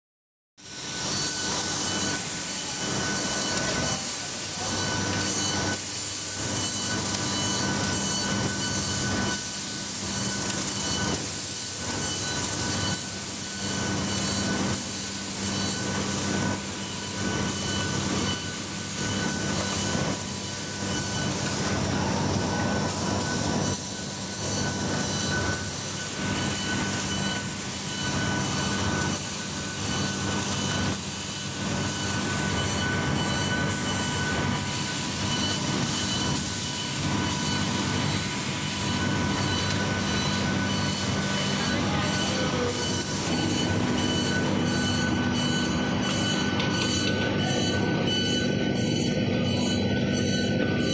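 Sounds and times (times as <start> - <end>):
machine drone with whining: 0.6 - 50.9.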